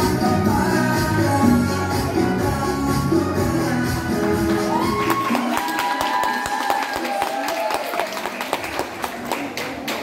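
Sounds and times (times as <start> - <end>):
latin ballroom dance music: 0.0 - 7.8
people clapping: 4.2 - 10.0.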